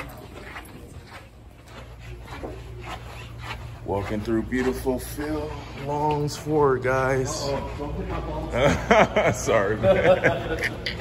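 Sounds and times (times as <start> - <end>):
footsteps on tiled floor: 0.0 - 11.0
steady low hum: 0.0 - 11.0.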